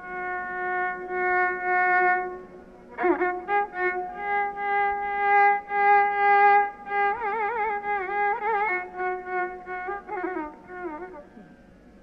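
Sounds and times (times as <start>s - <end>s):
violin playing ornamented notes: 0.0s - 11.3s.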